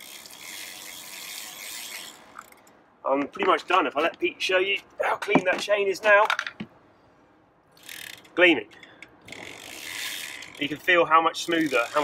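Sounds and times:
bicycle chain running over sprockets: 0.0 - 2.6, 7.8 - 8.3, 9.3 - 12.0
bicycle freehub ratchet clicking: 0.0 - 2.7, 7.8 - 12.0.

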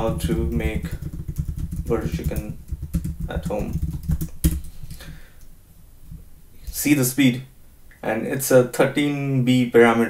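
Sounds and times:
computer keyboard typing: 0.0 - 4.8.

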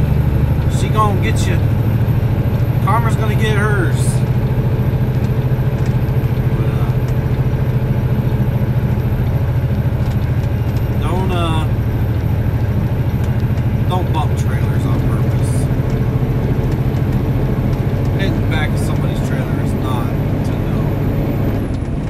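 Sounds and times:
truck diesel engine drone: 0.0 - 22.0
voice murmuring: 6.5 - 7.0.

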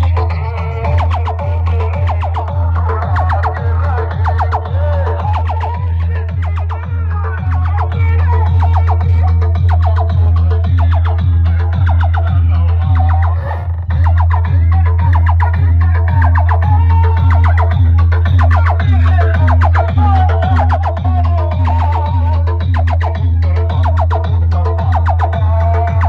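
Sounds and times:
loud dance music with heavy bass: 0.0 - 26.0.

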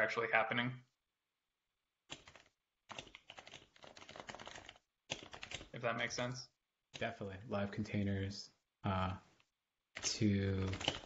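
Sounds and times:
computer keyboard typing: 2.1 - 5.8, 10.0 - 11.0.

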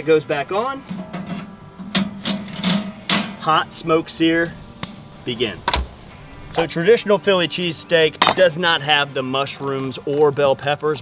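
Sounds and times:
metal grill grate scraping and clinking: 0.8 - 3.6.

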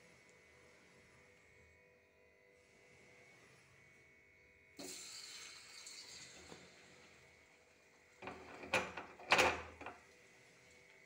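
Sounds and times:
food sizzling in oil: 4.8 - 7.0.

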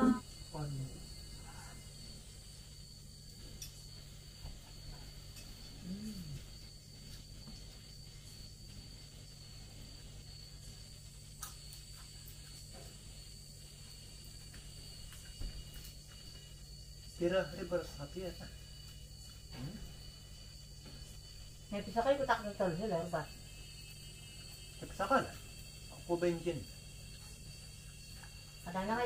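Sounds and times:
person speaking: 0.0 - 0.2
low steady hum: 0.0 - 17.3
high-pitched insect drone: 0.0 - 29.0.

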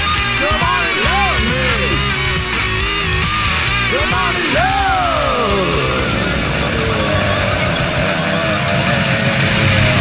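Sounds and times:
steady bass: 0.0 - 10.0
distorted electric guitar chord: 0.3 - 10.0.

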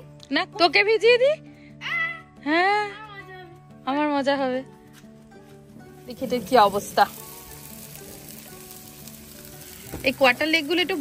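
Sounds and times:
soft background music: 0.0 - 11.0
chicken sizzling on a grill: 5.9 - 11.0.

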